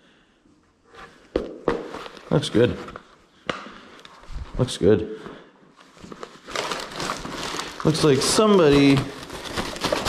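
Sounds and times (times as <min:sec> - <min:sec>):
plastic bag crinkling: 0:05.8 - 0:10.0.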